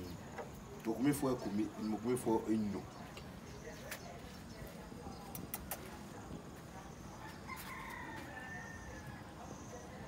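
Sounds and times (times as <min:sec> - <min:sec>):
rooster crowing: 0:07.2 - 0:09.3.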